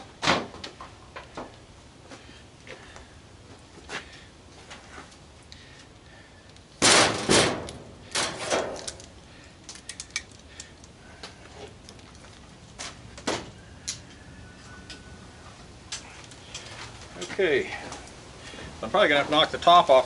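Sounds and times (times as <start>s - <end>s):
metallic bangs on steel cabinet: 6.8s - 8.7s.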